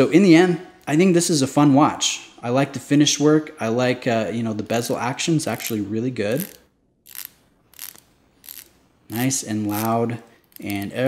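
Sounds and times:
watch bezel ratcheting clicks: 0:06.4 - 0:08.8, 0:09.7 - 0:11.0.

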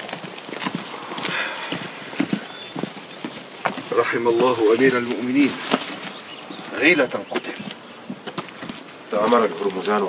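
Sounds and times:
footsteps on dirt path: 0:00.0 - 0:10.0.

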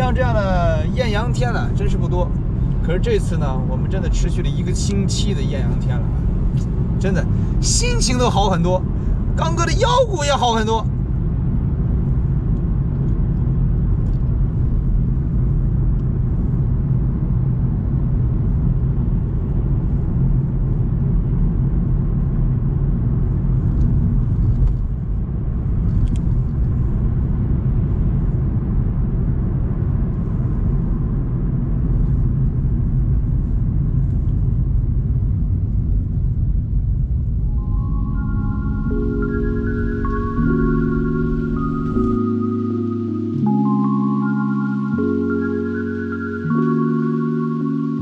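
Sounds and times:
car road and engine noise: 0:00.0 - 0:48.0.

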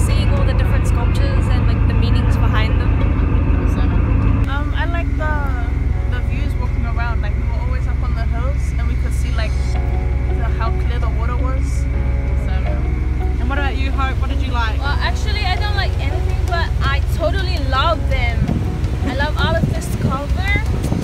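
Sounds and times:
voices talking: 0:00.0 - 0:20.8
ferry engines droning: 0:00.0 - 0:21.0.

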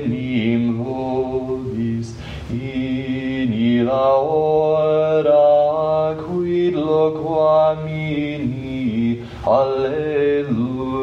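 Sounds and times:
sung liturgical chant: 0:00.0 - 0:11.0.

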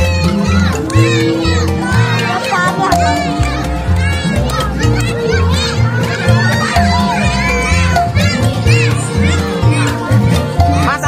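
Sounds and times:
children shouting and chattering: 0:00.0 - 0:11.0
music with repeating bass line: 0:00.0 - 0:11.0.

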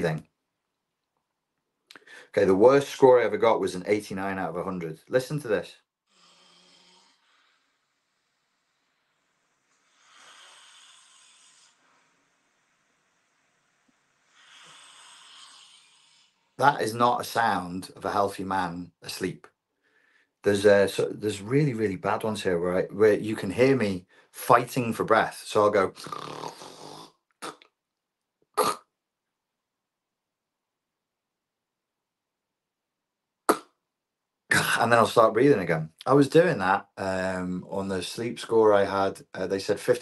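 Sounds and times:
man snoring through phone speaker: 0:06.1 - 0:16.6, 0:26.0 - 0:27.2.

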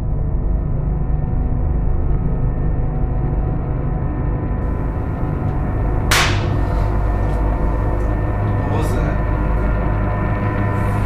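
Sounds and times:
low droning horror music: 0:00.0 - 0:11.0
sudden hissing hit: 0:04.6 - 0:11.0.

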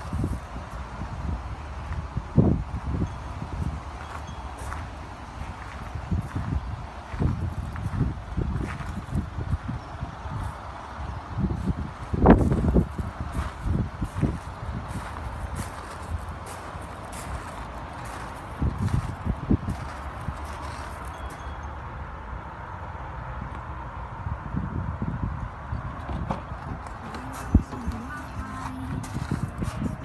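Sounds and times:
footsteps crunching on gravel: 0:03.6 - 0:09.3, 0:11.6 - 0:21.4, 0:26.6 - 0:30.0.

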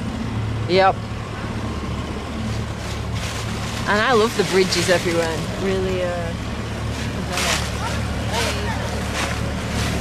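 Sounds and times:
boat engine chugging: 0:00.0 - 0:10.0.

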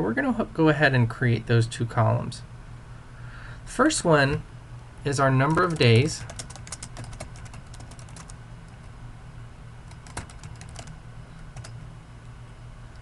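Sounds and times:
steady low hum: 0:00.0 - 0:13.0
keyboard typing: 0:05.4 - 0:08.8, 0:09.9 - 0:11.8.

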